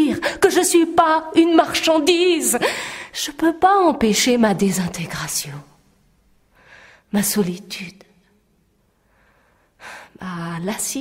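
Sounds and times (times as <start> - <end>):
woman speaking: 0.0 - 5.8, 7.1 - 8.0, 10.2 - 11.0
woman breathing in: 2.6 - 3.2, 6.5 - 7.1, 8.9 - 10.2.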